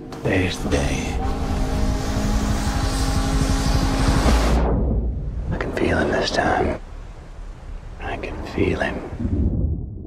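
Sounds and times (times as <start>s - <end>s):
held musical drone: 0.0s - 4.7s
low engine rumble: 0.0s - 10.0s
motorboat rushing over water: 0.6s - 6.0s.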